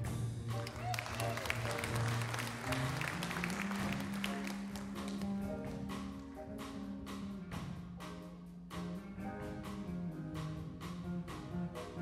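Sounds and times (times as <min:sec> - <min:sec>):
band playing slow ballad: 0:00.0 - 0:12.0
audience applauding: 0:00.6 - 0:05.8.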